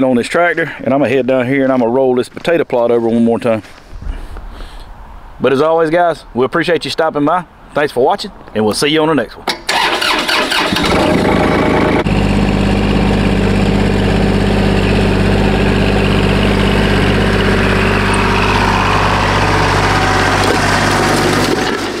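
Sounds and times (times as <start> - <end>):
tractor diesel engine running: 9.7 - 22.0.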